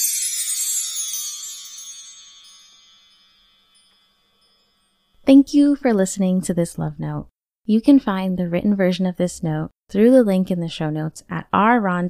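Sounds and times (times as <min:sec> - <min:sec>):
chimes ringing: 0:00.0 - 0:05.3.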